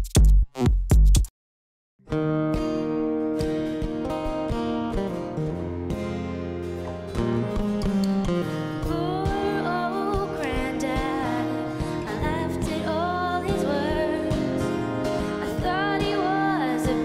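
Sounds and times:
acoustic guitar strumming: 2.0 - 17.0
woman singing: 8.8 - 17.0.

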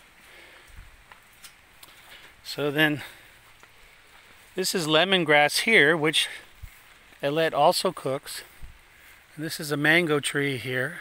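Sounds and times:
footsteps on grass: 0.0 - 10.9.

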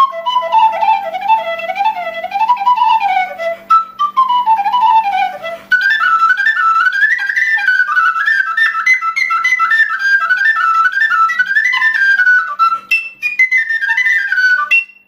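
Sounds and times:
wooden flute folk melody: 0.0 - 15.0.

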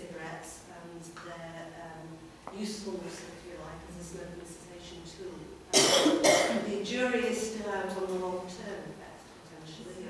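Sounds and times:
people speaking: 0.0 - 10.0
person coughing: 5.7 - 6.6.

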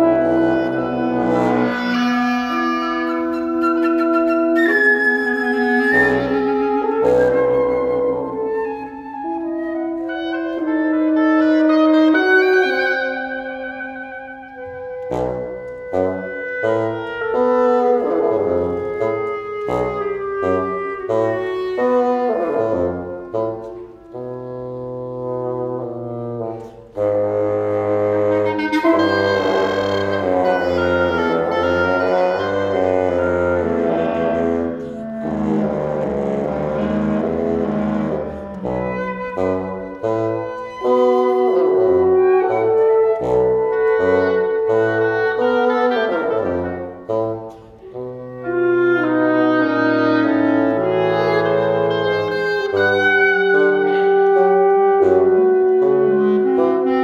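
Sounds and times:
wind quintet chamber music: 0.0 - 57.0.

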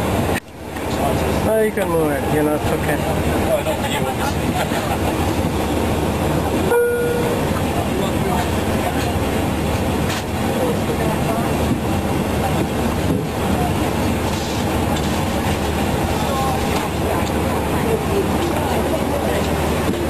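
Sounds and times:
airliner engines droning: 0.0 - 20.0
faint voices: 7.2 - 20.0.

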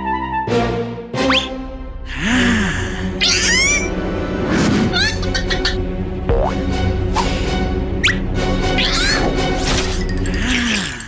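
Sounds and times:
background music: 0.0 - 11.0
cartoon chick squeal: 3.2 - 3.9, 4.9 - 5.8, 8.8 - 9.3.

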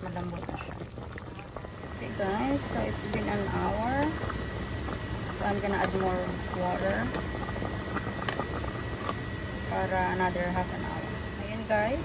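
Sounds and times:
broth bubbling in a pan: 0.0 - 11.5.

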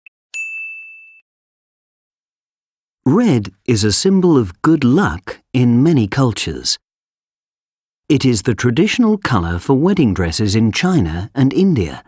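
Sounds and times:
bright bell ding: 0.3 - 1.2.

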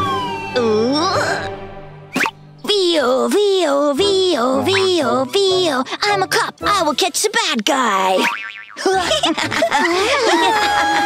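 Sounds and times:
cartoon voice sing-song sounds: 2.6 - 8.2
wobbling boing sound effect: 8.2 - 8.8.

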